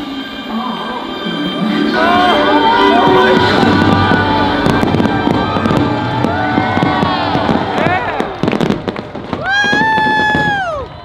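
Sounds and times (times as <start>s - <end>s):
music playing: 0.0s - 9.3s
fireworks popping and bursting: 3.2s - 11.0s.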